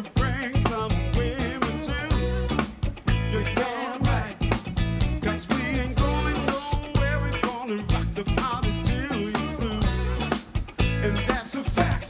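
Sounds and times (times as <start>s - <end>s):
funk band playing: 0.0s - 12.0s
person singing lead vocal: 0.0s - 12.0s.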